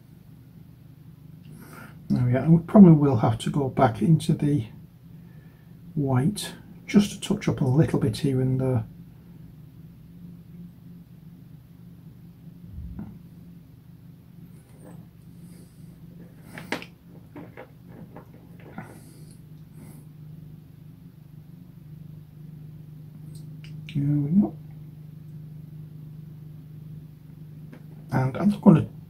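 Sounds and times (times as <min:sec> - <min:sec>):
low hum: 0:00.0 - 0:29.0.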